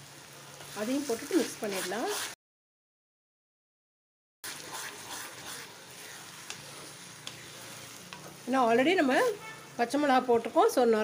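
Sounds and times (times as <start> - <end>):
food sizzling in a pan: 0.0 - 2.4, 4.4 - 11.0
spatula stirring: 0.6 - 2.4, 4.4 - 9.7
spatula tapping a pan: 8.1 - 8.4.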